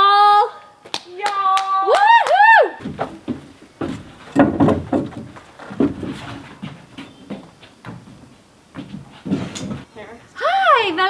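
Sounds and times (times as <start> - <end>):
footsteps on plank deck: 2.8 - 9.9
wooden knocks and bumps: 2.8 - 9.9.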